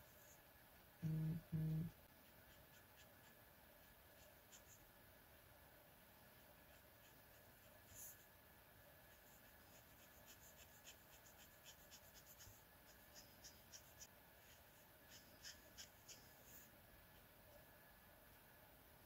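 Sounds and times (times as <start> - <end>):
brush nib scratching paper: 2.0 - 4.9, 6.3 - 8.3, 9.0 - 16.7.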